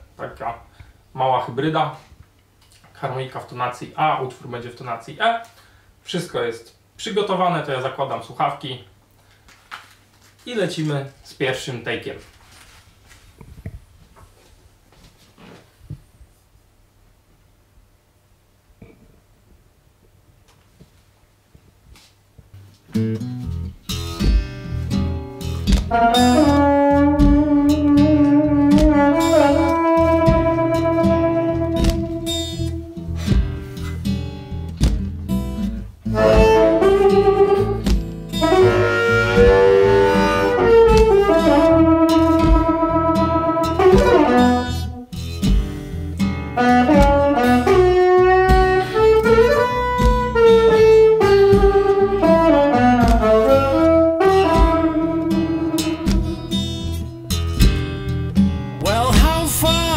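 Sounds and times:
acoustic guitar and foot stomps: 21.9 - 59.9
harmonica bent notes: 25.4 - 34.2, 35.6 - 46.0, 46.6 - 58.0.

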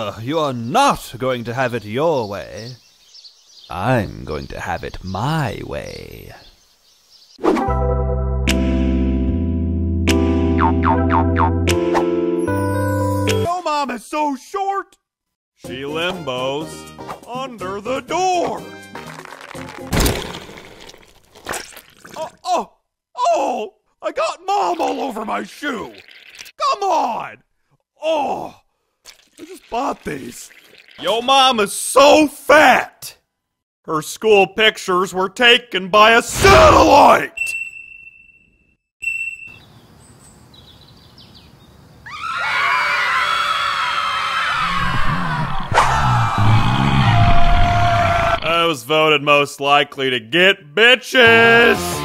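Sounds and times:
music: 7.5 - 13.5, 15.6 - 19.9, 51.3 - 52.0
sharp crack: 19.0 - 21.7
short electronic beep: 39.0 - 39.6
crowd shouting and screaming: 42.1 - 48.5.

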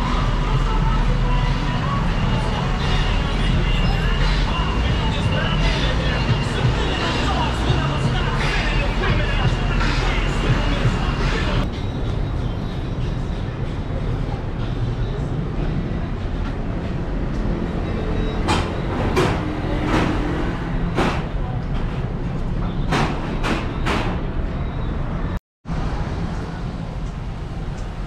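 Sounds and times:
low vehicle rumble: 0.0 - 28.0.

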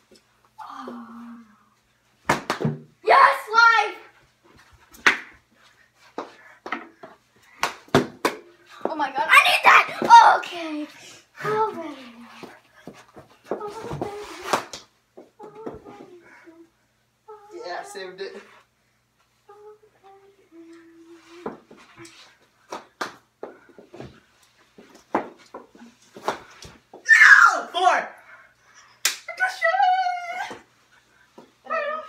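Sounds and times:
hockey sticks knocking ball: 6.2 - 9.0, 24.8 - 27.0
children shouting: 27.1 - 27.8.

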